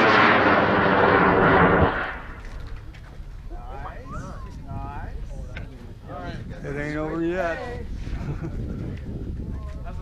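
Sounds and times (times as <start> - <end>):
rocket motor roar: 0.0 - 2.7.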